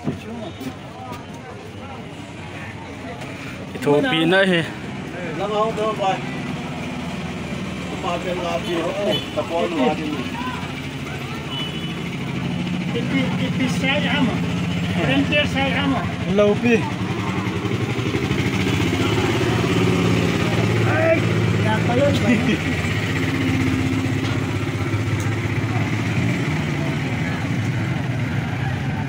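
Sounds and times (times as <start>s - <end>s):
vehicle engine idling: 1.5s - 29.0s.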